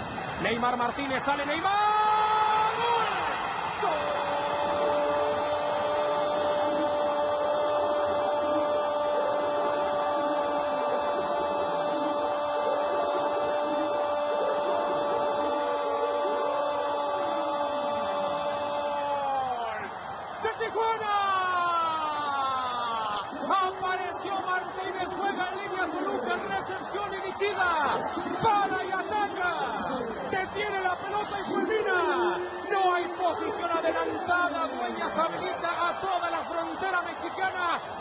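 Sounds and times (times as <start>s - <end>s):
noisy background: 0.0s - 38.0s
commentator shouting goal: 0.4s - 37.9s.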